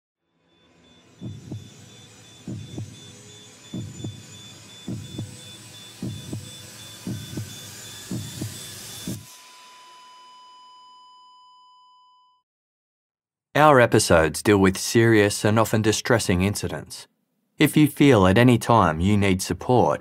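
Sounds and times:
high ringing tone: 0:00.2 - 0:12.4
hissing drone: 0:00.8 - 0:09.5
heartbeat thumps: 0:01.2 - 0:01.8, 0:02.4 - 0:03.1, 0:03.7 - 0:09.3.

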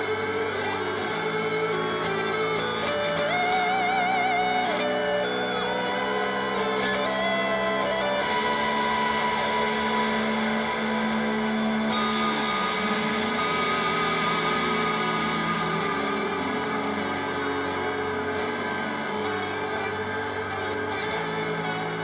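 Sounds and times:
ambient electric guitar drones: 0:00.0 - 0:22.0.

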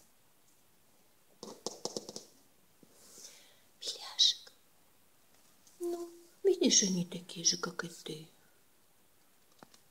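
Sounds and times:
person whispering: 0:03.8 - 0:04.6, 0:05.8 - 0:08.4.

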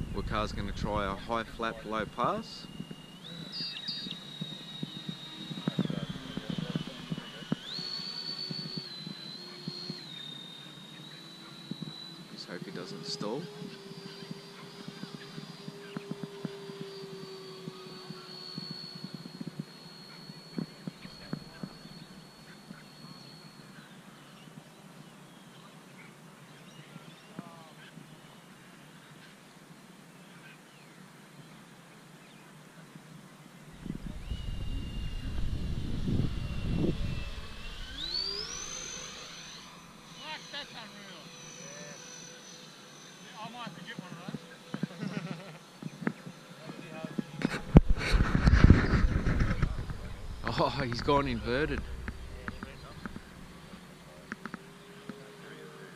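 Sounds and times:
low rumble on microphone: 0:00.0 - 0:02.9, 0:33.7 - 0:38.2, 0:47.4 - 0:54.5
electric ducted fans whining: 0:00.0 - 0:55.9.

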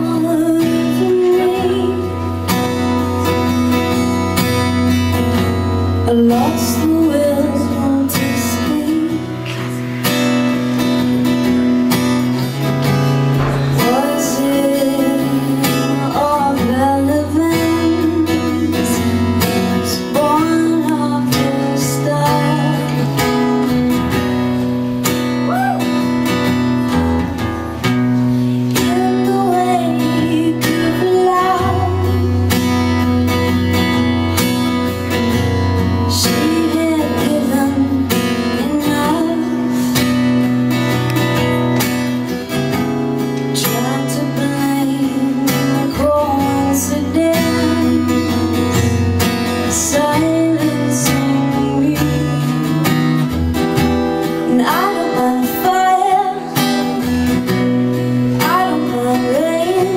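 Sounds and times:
woman singing slow melody: 0:00.0 - 0:03.6, 0:05.9 - 0:09.9, 0:13.6 - 0:23.5, 0:28.6 - 0:33.0, 0:36.0 - 0:40.4, 0:43.4 - 0:53.3, 0:54.4 - 0:57.0, 0:58.3 - 0:59.9
strummed acoustic guitar: 0:00.0 - 0:59.9.

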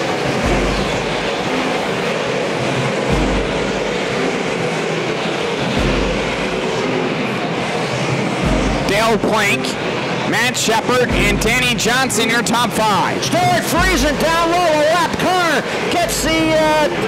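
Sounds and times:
race car engines roaring: 0:00.0 - 0:17.0.

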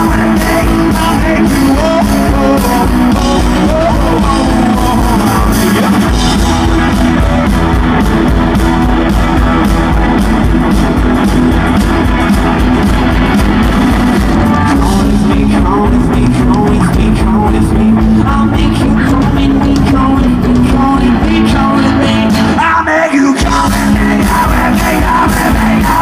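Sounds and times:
drum kit: 0:00.0 - 0:26.0
electric guitars: 0:00.0 - 0:26.0.

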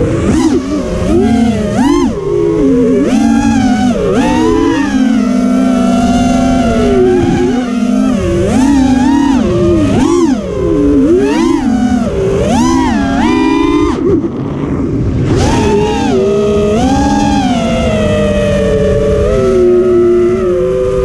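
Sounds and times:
quadcopter propellers whining: 0:00.0 - 0:21.0.

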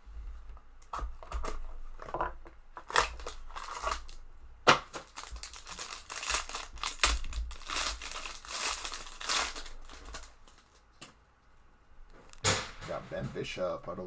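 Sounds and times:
foil wrapper crinkling and tearing: 0:02.8 - 0:04.2, 0:04.9 - 0:10.9.

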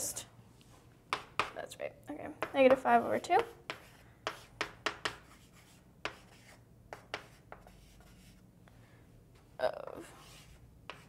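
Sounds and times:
writing tool scratching and tapping: 0:02.4 - 0:08.3, 0:10.3 - 0:11.0.

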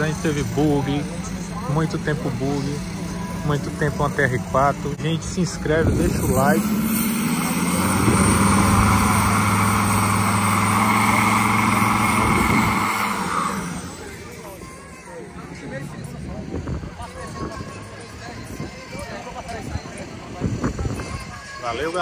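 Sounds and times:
drag car engine at high revs: 0:00.0 - 0:14.6.

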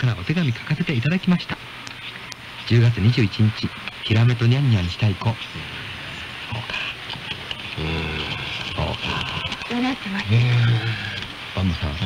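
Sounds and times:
faint low murmurs: 0:00.0 - 0:12.0
radio static hiss: 0:00.0 - 0:12.0.

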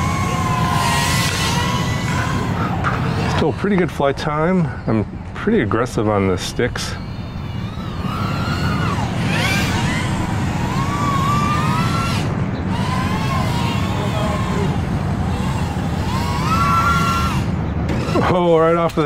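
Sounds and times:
drone motors whining: 0:00.0 - 0:19.0.

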